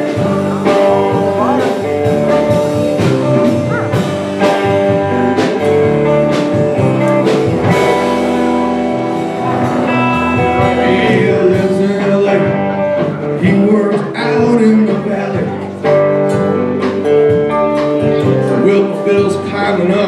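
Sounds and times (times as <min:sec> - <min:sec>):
live country band instrumental: 0:00.0 - 0:20.0.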